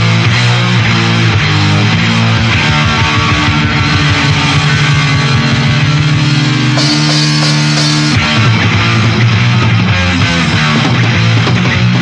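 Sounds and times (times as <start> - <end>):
bass guitar: 0.0 - 12.0
electric guitar riffing fast: 0.0 - 12.0.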